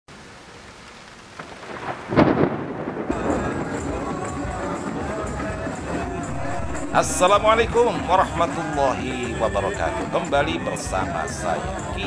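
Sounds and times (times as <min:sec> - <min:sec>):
steady rain hiss: 0:00.1 - 0:12.0
thunderclap rumbling: 0:01.4 - 0:08.9
outdoor sound: 0:05.7 - 0:08.6.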